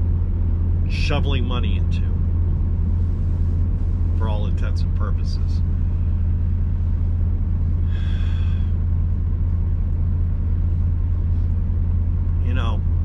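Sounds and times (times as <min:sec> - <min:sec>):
diesel engine idling: 0:00.0 - 0:13.0.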